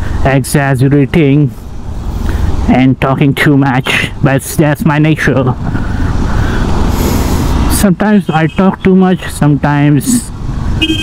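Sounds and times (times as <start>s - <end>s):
wind and road noise: 0.0s - 11.0s
person speaking: 2.5s - 10.4s.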